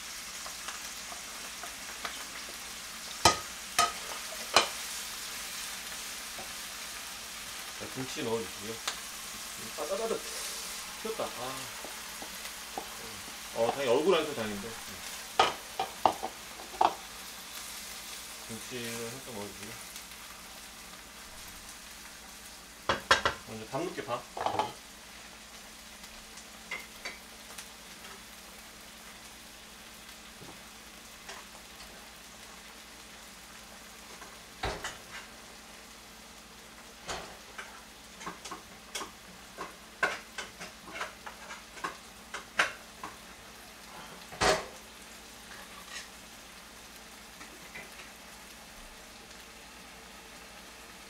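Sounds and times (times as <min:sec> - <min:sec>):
food sizzling in a pan: 0:00.0 - 0:51.0.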